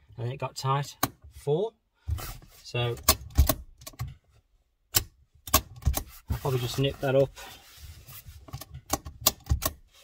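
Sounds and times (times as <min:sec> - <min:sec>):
handbrake lever ratchet clicking: 0:03.0 - 0:04.2, 0:04.9 - 0:06.2, 0:08.5 - 0:09.8.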